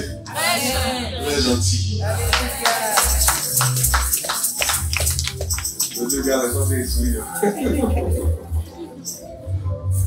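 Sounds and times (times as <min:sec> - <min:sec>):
deep bass notes: 0:00.0 - 0:04.1
sharp percussion strikes: 0:02.2 - 0:07.9.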